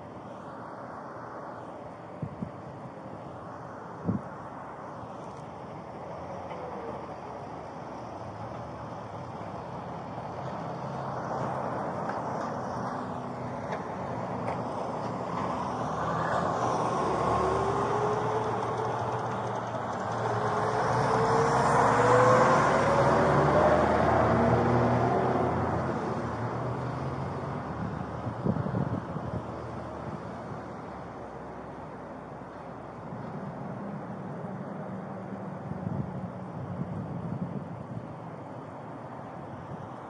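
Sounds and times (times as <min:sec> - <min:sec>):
motor vehicle engine: 0:10.4 - 0:34.1.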